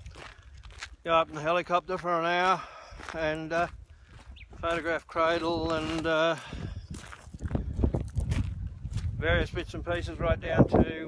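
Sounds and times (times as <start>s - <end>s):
footsteps on gravel: 0.0s - 10.2s.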